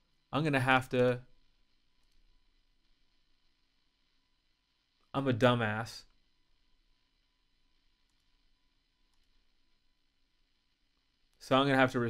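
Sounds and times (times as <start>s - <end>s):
person speaking: 0.3s - 1.3s
computer mouse clicks: 8.1s - 8.4s, 9.1s - 9.4s.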